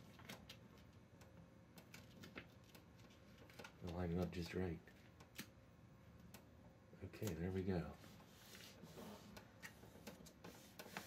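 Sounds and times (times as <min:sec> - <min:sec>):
paper and tape rustling: 0:01.8 - 0:05.5, 0:07.2 - 0:11.0.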